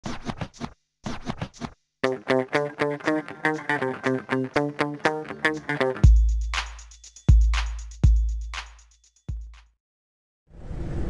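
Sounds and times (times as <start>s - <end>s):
scratching sound effect: 0.0s - 6.0s.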